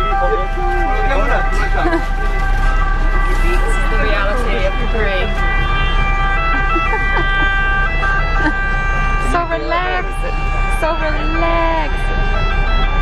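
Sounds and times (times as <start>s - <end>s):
people's voices: 0.0s - 12.7s
held stepping musical tones: 0.0s - 13.0s
low rumble inside a bus: 0.0s - 13.0s.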